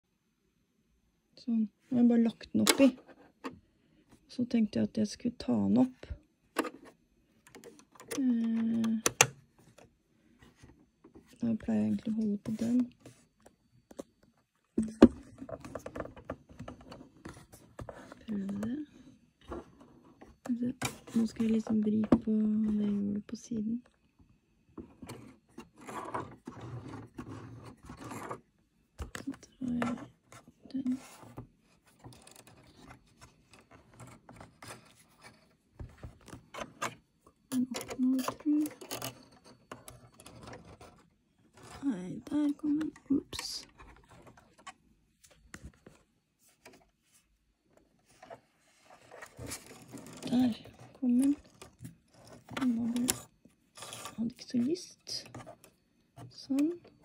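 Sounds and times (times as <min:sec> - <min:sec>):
woman speaking: 0:01.4 - 0:03.0, 0:04.3 - 0:06.2, 0:08.2 - 0:09.1, 0:11.4 - 0:12.9, 0:14.8 - 0:15.2, 0:18.3 - 0:18.9, 0:20.5 - 0:23.9, 0:29.2 - 0:30.0, 0:30.6 - 0:31.0, 0:37.5 - 0:38.8, 0:41.8 - 0:43.7, 0:50.2 - 0:51.4, 0:52.6 - 0:53.2, 0:54.1 - 0:55.3, 0:56.3 - 0:56.8.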